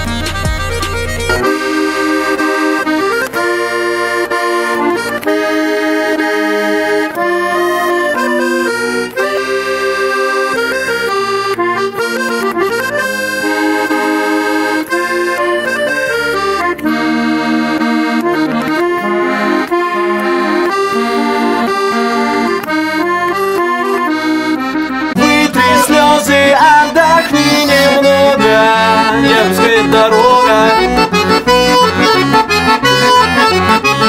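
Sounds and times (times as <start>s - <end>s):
button accordion folk melody: 0.0s - 34.0s.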